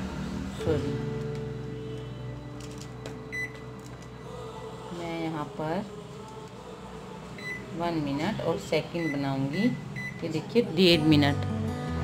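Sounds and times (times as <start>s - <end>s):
microwave keypad beep: 3.3s - 3.6s, 7.4s - 7.7s, 9.0s - 10.4s.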